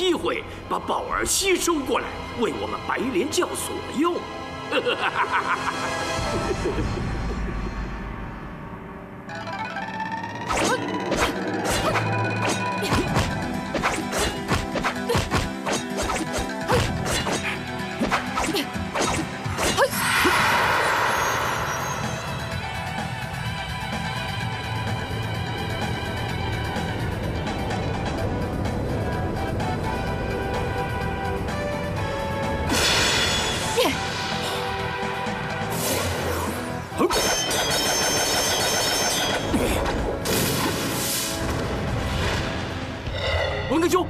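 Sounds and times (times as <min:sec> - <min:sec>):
background music: 0:00.0 - 0:44.0
fight swishes and hits: 0:10.6 - 0:20.4
whoosh: 0:19.8 - 0:22.8.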